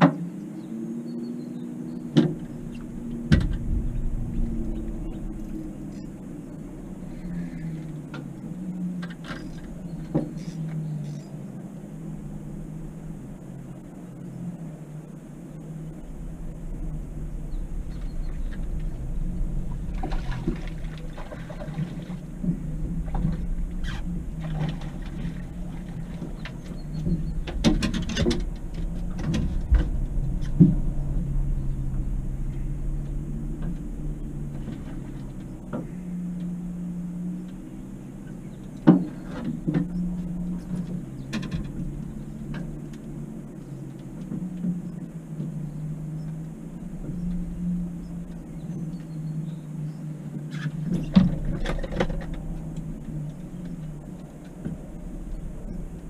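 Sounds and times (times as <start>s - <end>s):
outboard motor humming: 0.0s - 56.0s
knocks and rattles on metal boat: 2.1s - 11.2s, 16.6s - 36.7s, 38.6s - 49.2s, 50.4s - 56.0s.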